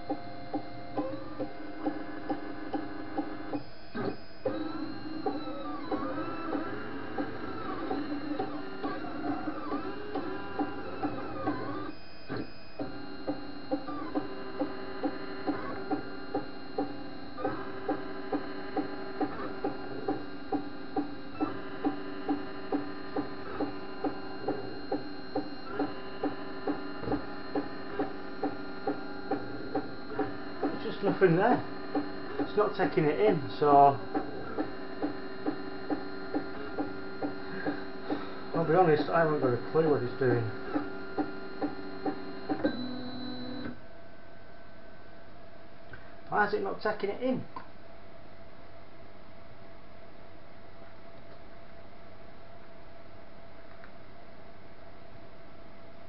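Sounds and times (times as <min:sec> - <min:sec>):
regular ticking: 0:00.0 - 0:43.7
stepper motors whining: 0:00.0 - 0:43.8.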